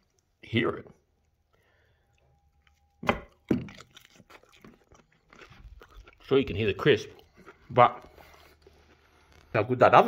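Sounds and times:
faint steady hum: 0.0 - 6.2.

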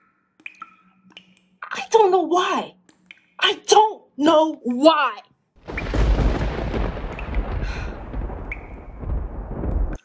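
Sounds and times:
deep rumbling noise: 5.6 - 10.0.

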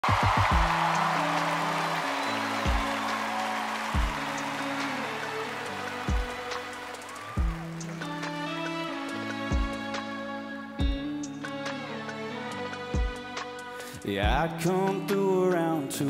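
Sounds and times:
audience noise: 0.0 - 10.0.

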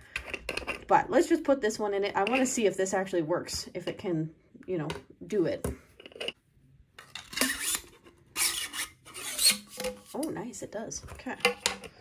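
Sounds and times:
plastic blade rasping in a hilt: 7.2 - 10.1.

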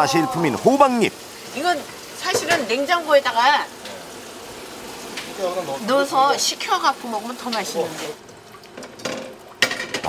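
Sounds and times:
colander knock: 8.8 - 10.0.

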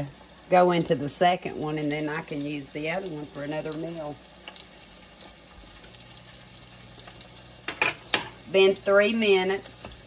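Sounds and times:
meat sizzling in a pan: 0.0 - 10.0
utensil clattering on pan: 7.0 - 8.4.

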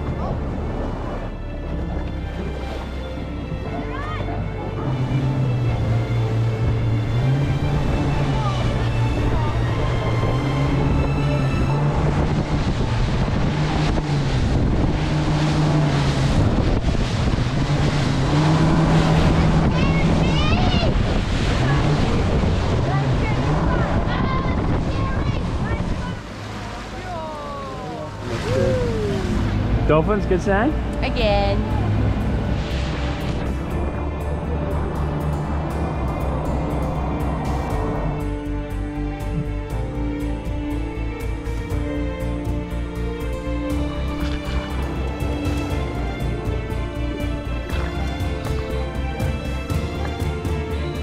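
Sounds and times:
outboard engines running: 0.0 - 51.0
rushing water: 0.0 - 51.0
rushing wind: 4.4 - 51.0
voices: 21.6 - 32.2.

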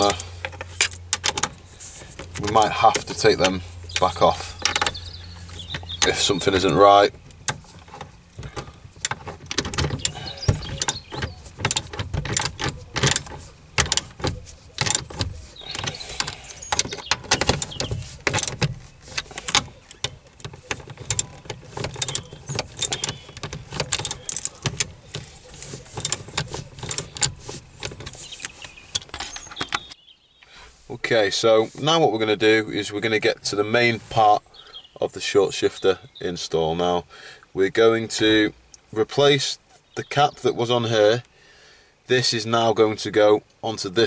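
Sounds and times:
socket ratchet clicking: 7.2 - 30.0.

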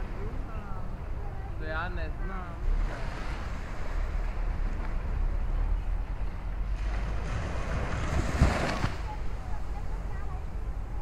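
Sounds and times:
waves washing onto beach: 0.0 - 11.0
wind buffeting microphone: 0.0 - 11.0.

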